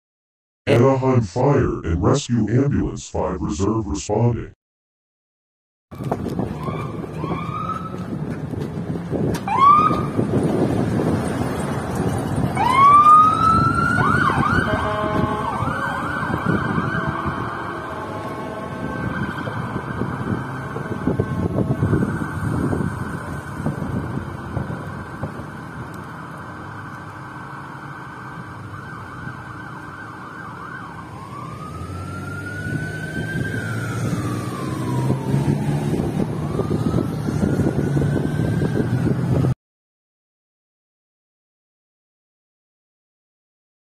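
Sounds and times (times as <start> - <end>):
ambulance siren: 5.9 - 8.3, 9.4 - 11.1, 12.3 - 39.6
traffic rumble: 5.9 - 39.5.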